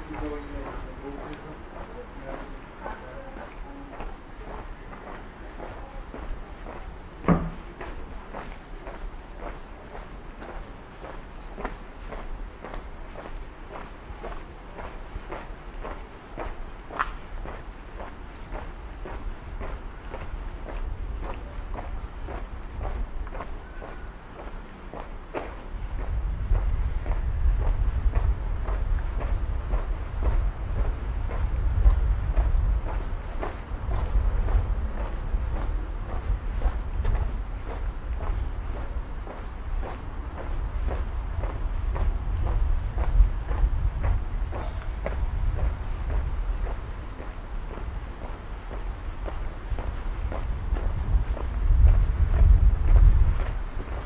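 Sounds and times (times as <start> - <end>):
footsteps on pavement: 0.0 - 54.0
wind rumble on microphone: 0.0 - 54.0.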